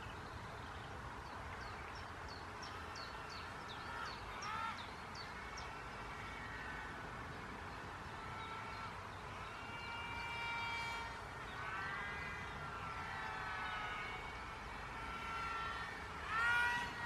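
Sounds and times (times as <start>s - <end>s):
model plane motors whining: 15.0s - 17.0s.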